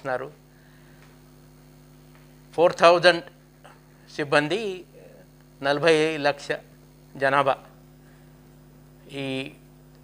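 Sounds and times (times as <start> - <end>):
electrical hum: 0.0 - 10.0
man speaking: 2.5 - 3.4, 4.1 - 7.8, 9.1 - 9.6.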